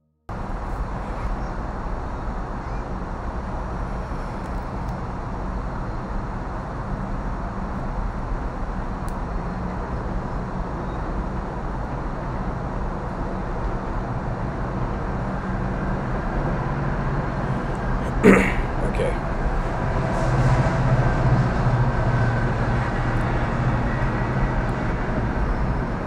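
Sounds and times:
low rumbling background noise: 0:00.3 - 0:26.0.

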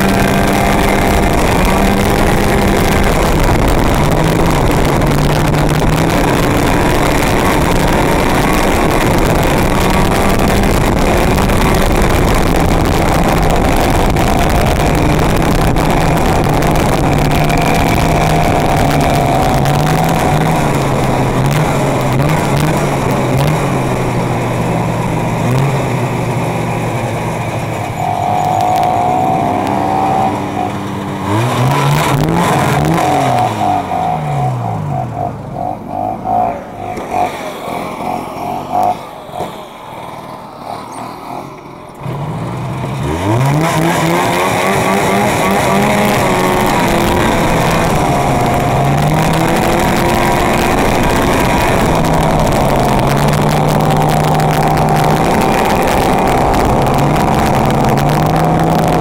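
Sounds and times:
snowmobile engine revving: 0:00.0 - 0:59.0.

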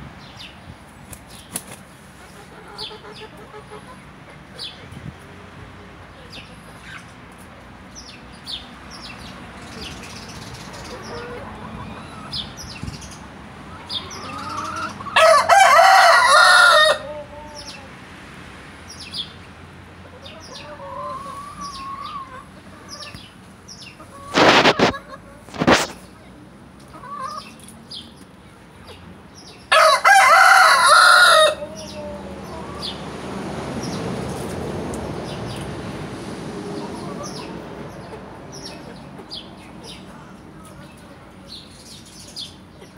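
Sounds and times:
hens clucking softly: 0:02.2 - 0:05.0, 0:10.7 - 0:12.4, 0:20.0 - 0:26.0
rooster crowing: 0:15.1 - 0:17.6, 0:29.7 - 0:32.2.

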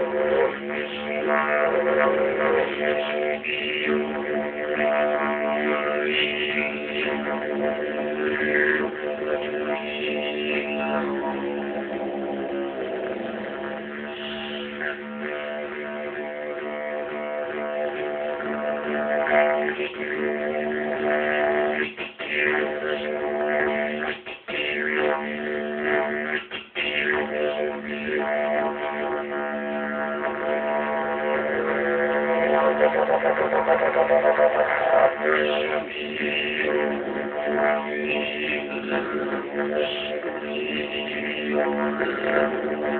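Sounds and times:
didgeridoo drone: 0:00.0 - 0:42.9.

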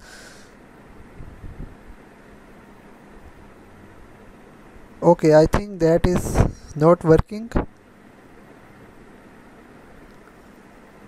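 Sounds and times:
low microphone hiss and hum: 0:00.0 - 0:11.0.

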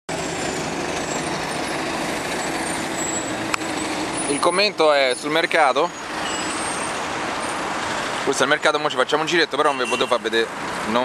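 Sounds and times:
road traffic hiss: 0:00.1 - 0:11.0.

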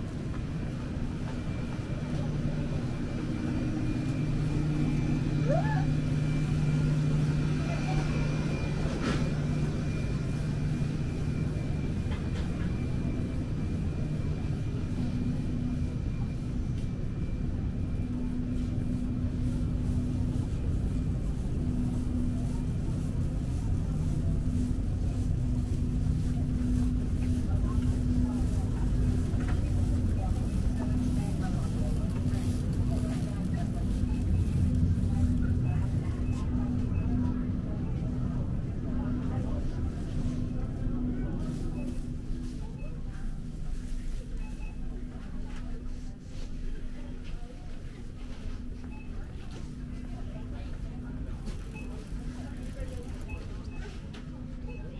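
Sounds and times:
faint voices: 0:00.0 - 0:54.9
refrigerator and ventilation hum: 0:00.0 - 0:54.9.

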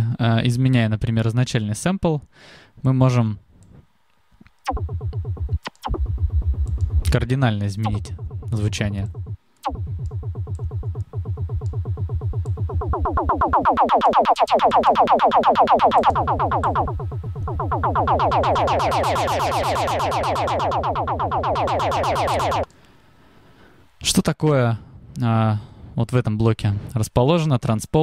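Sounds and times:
pulsing synth bass: 0:04.7 - 0:22.7.

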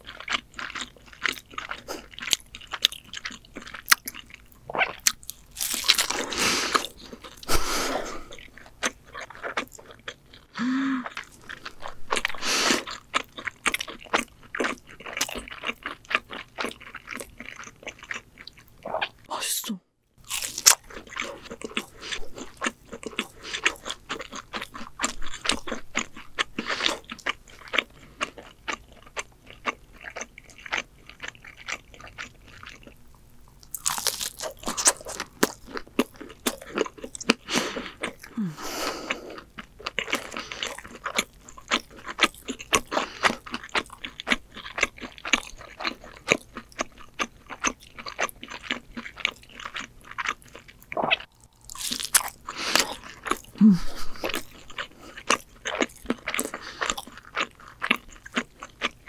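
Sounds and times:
crunchy biting and chewing: 0:00.0 - 0:19.2, 0:20.2 - 0:59.0.

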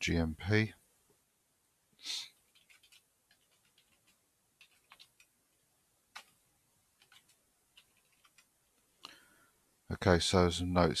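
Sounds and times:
computer keyboard keystrokes: 0:02.5 - 0:05.3, 0:06.1 - 0:06.4, 0:07.0 - 0:08.5.

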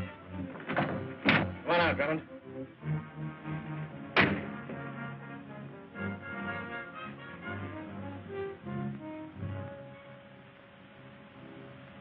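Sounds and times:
orchestral film score: 0:00.0 - 0:12.0
sharp thuds: 0:00.6 - 0:01.6, 0:04.2 - 0:04.8.

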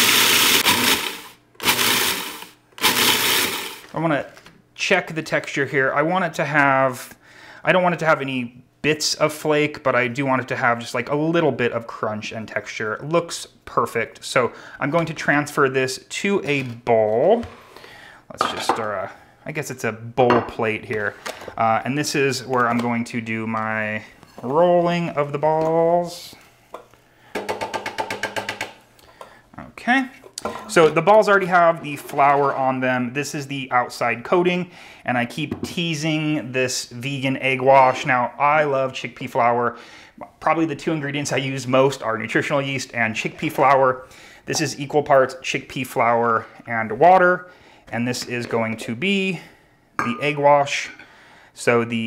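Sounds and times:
food processor blade whirring: 0:00.0 - 0:03.9.

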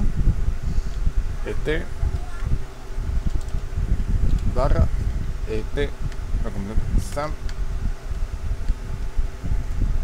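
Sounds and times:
low buzzing hum: 0:00.0 - 0:10.0
man's voice: 0:01.4 - 0:02.0, 0:04.5 - 0:07.4.

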